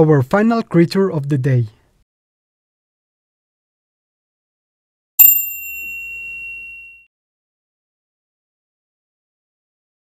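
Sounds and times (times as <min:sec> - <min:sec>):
bright bell ding: 0:05.2 - 0:07.1.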